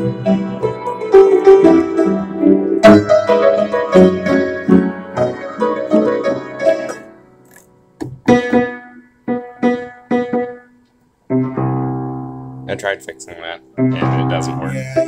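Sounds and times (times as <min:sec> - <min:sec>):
out-of-tune piano chords: 0:00.0 - 0:15.0.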